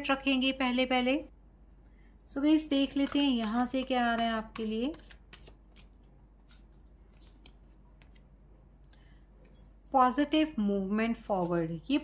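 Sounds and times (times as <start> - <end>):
cards shuffling: 4.9 - 8.4.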